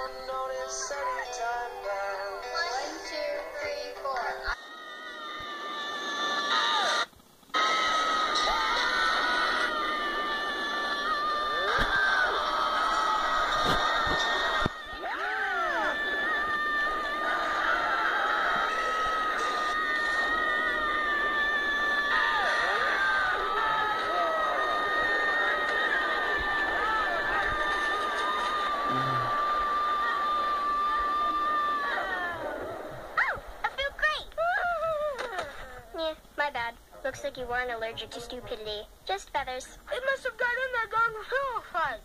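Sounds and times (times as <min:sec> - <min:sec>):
high-pitched screaming: 0:04.6 - 0:33.4.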